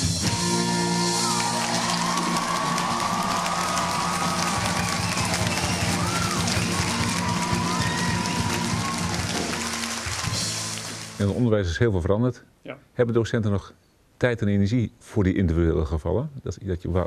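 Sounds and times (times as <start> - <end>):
audience clapping and cheering: 0.0 - 11.4
high shouts: 0.3 - 9.6.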